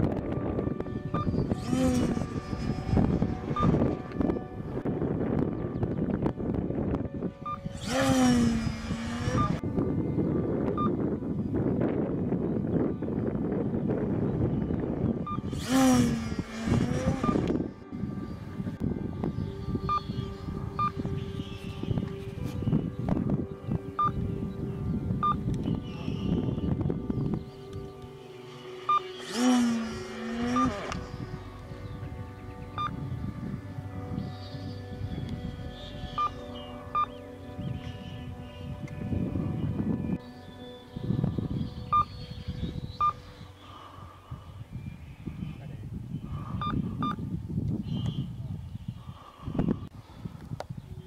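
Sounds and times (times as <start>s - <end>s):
sustained background tones: 0.0s - 47.3s
electric motor and propeller whine: 0.0s - 47.6s
short electronic beeps: 1.1s - 1.3s, 9.4s - 9.6s, 15.2s - 15.5s, 24.0s - 24.2s, 25.2s - 25.4s, 28.9s - 29.1s, 32.8s - 33.0s, 46.6s - 47.2s.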